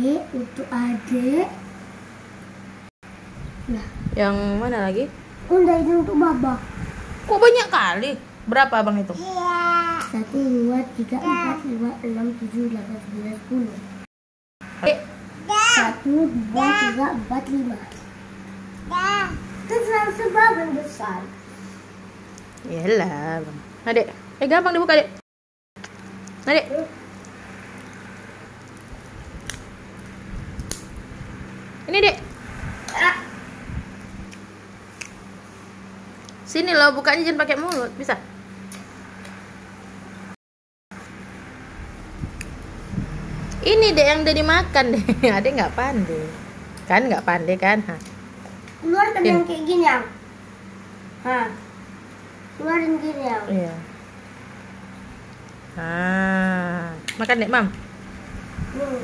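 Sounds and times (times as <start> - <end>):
room hum: 0.0 - 25.2, 25.8 - 40.4, 41.0 - 59.0.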